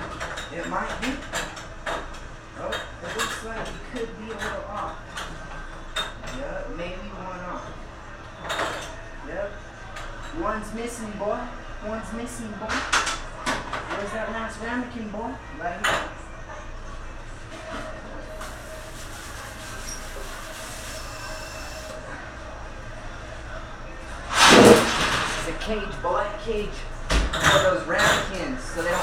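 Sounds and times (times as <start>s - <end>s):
kitchen background hum: 0.0s - 29.0s
wire rack clattering: 24.2s - 25.7s.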